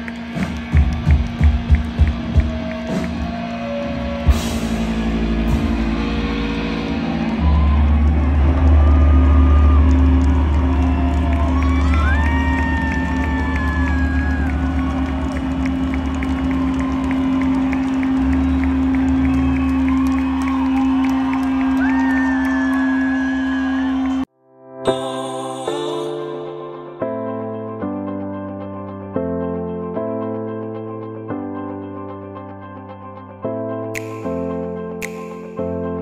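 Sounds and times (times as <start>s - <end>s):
crowd cheering: 0.0s - 24.3s
high whistles from crowd: 16.7s - 24.3s.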